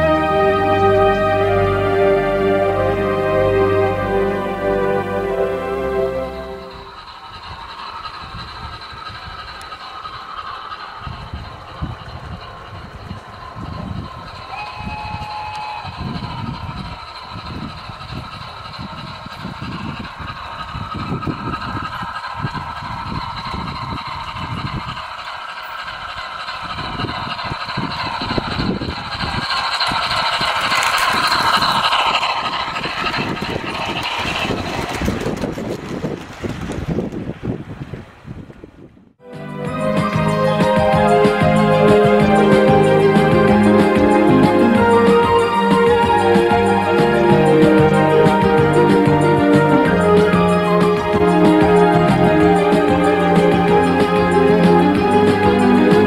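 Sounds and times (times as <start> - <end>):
model train running on track: 0.0 - 56.0.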